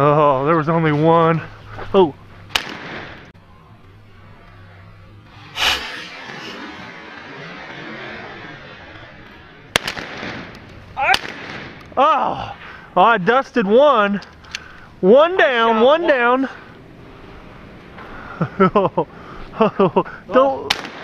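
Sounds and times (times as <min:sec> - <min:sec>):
shotgun shots: 0:02.5 - 0:03.2, 0:09.7 - 0:11.8, 0:20.7 - 0:21.0.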